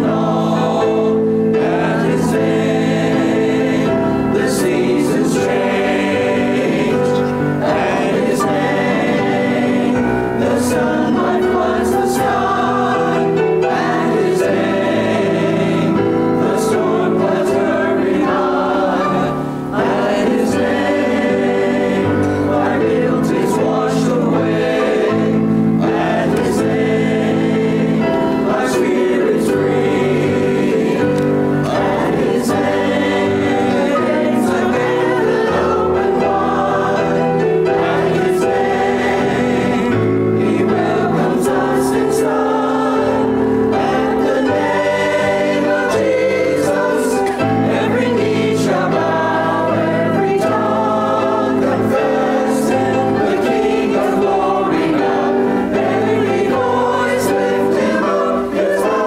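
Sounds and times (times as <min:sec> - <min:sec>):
mixed choir singing: 0:00.0 - 0:59.0.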